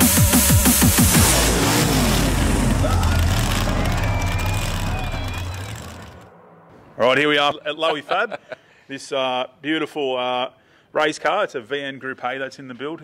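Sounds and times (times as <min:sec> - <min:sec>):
car engine running hard: 0:00.1 - 0:06.3
tyre noise rumble: 0:01.1 - 0:07.8.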